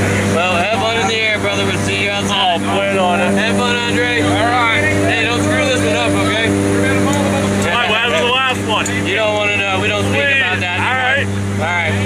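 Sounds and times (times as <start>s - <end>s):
steady low drone: 0.0s - 12.0s.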